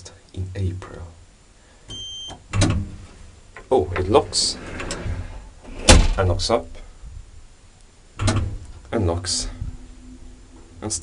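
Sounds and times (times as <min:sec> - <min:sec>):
elevator control beep: 0:01.9 - 0:02.4.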